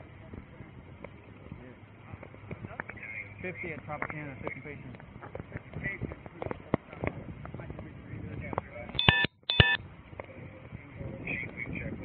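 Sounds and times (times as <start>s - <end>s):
short electronic beeps: 9.0s - 9.8s.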